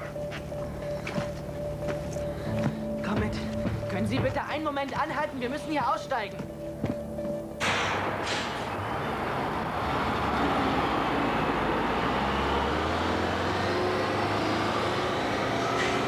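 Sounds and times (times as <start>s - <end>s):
road noise: 4.6s - 16.0s
bus engine rumble: 7.6s - 16.0s.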